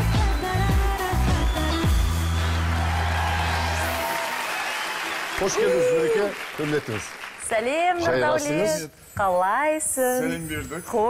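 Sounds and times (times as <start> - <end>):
audience applauding: 0.8 - 8.2.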